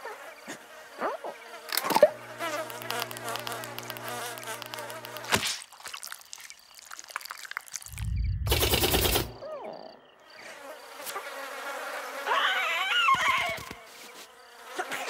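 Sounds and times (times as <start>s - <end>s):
cartoon fireflies buzzing: 0.4s - 14.9s
low thump and rush: 7.9s - 9.4s.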